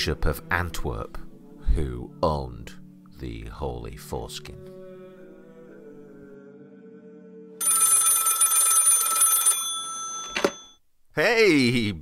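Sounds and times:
low chant-like music: 0.0 - 7.6
telephone bell ringing: 7.6 - 10.8.

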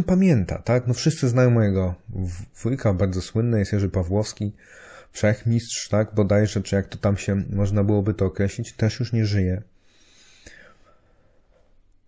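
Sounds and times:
man breathing faintly: 4.6 - 5.2, 9.7 - 11.9.

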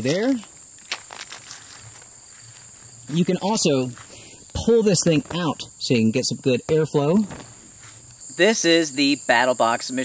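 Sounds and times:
crickets calling: 0.0 - 10.0.

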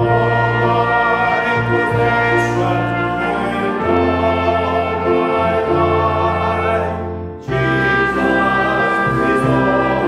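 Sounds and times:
congregation singing a hymn: 0.0 - 10.0
organ-like chords: 0.0 - 10.0.

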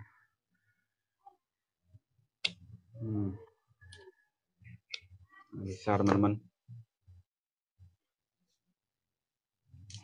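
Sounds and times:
person humming: 3.0 - 3.5.

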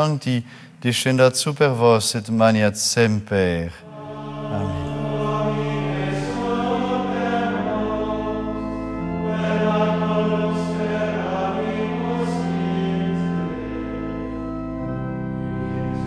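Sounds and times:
choir singing sustained chords: 3.8 - 16.0.

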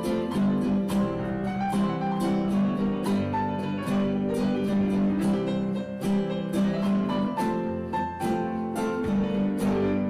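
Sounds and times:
acoustic guitar picking: 0.0 - 10.0.

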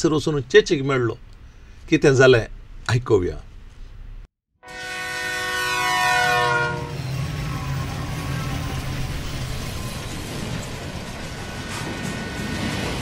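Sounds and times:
train horn blast: 4.6 - 7.8
train rumbling: 5.2 - 13.0.

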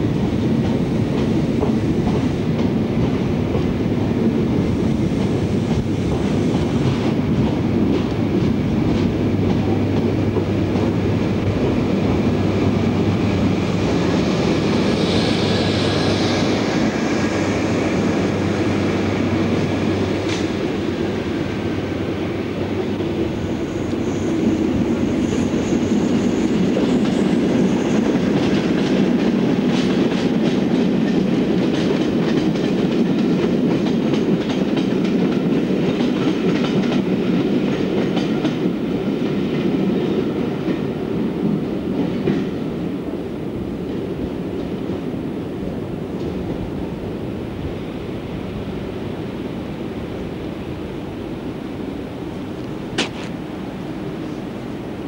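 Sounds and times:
wheels clickety-clack over rail joints: 0.0 - 45.2, 46.0 - 48.0, 52.6 - 53.5
train coaches rumbling past: 0.0 - 55.0.

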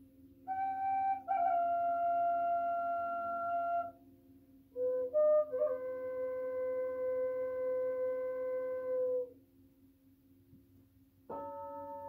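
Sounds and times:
flute playing slowly: 0.5 - 4.0, 4.7 - 9.4, 11.3 - 12.0.

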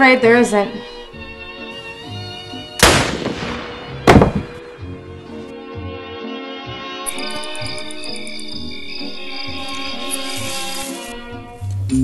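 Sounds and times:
string music: 0.0 - 12.0
gunshots: 2.8 - 4.7.

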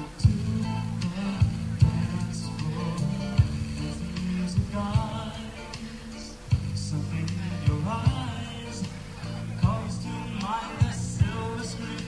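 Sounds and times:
live band playing pop ballad: 0.0 - 12.0
man singing: 0.0 - 12.0.

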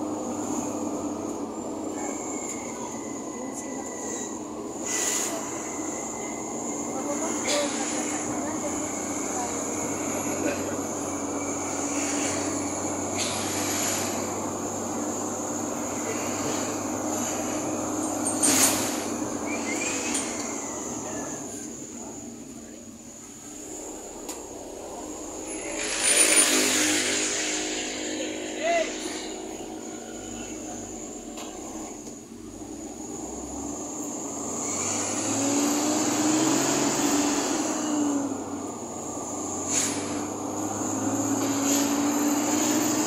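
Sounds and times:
engine and road rumble: 0.0 - 43.0.

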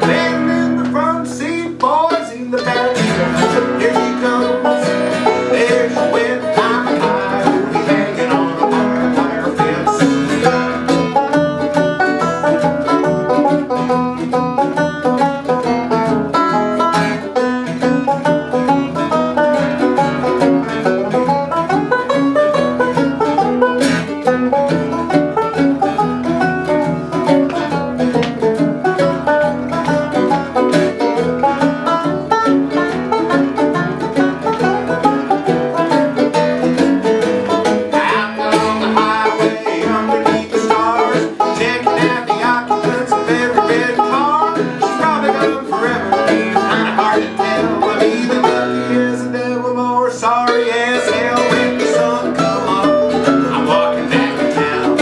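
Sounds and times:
banjo picking quick runs: 0.0 - 55.0
strummed acoustic guitar: 0.0 - 55.0.

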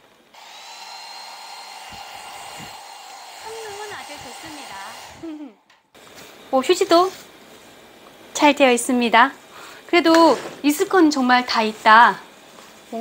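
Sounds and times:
hair dryer blowing with high whine: 0.3 - 5.6.

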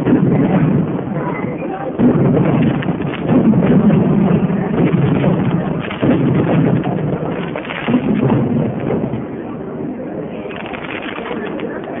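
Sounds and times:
light crackles: 0.0 - 9.5, 10.4 - 12.0
underwater fireworks rumbling: 0.0 - 12.0.

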